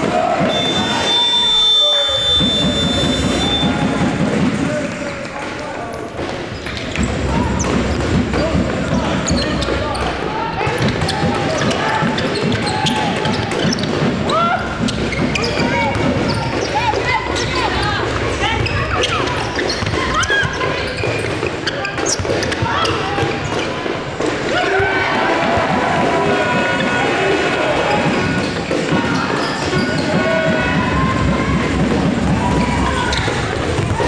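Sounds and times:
people calling out in a hall: 0.0 - 34.0
ball bouncing on wooden court: 6.2 - 24.3, 28.0 - 34.0.

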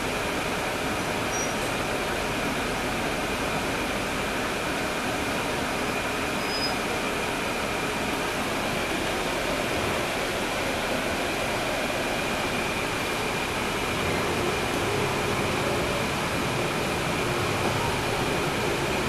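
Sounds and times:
bus cabin engine drone: 0.0 - 19.0.

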